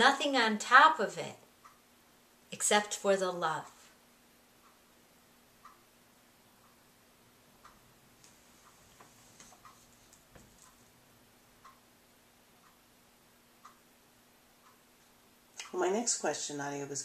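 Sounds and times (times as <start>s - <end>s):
low steady hum: 0.0s - 17.0s
wall clock ticking: 0.0s - 17.0s.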